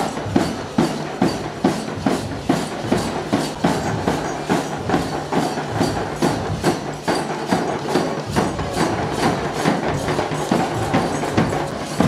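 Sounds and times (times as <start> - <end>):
marching bass and snare drums: 0.0 - 12.0.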